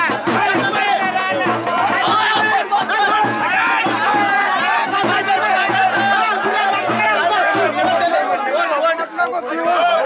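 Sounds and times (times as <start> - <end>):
crowd of men talking: 0.0 - 10.0.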